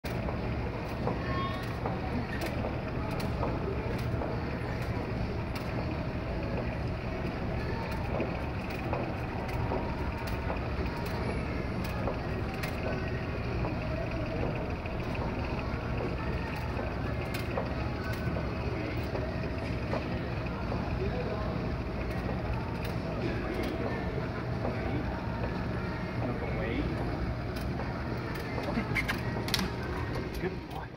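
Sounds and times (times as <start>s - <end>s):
low machinery hum: 0.0s - 30.9s
murmur of voices: 0.1s - 30.9s.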